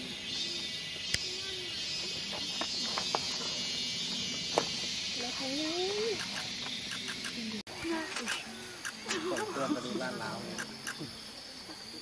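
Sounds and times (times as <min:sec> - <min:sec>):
forest insects droning: 0:00.0 - 0:12.0.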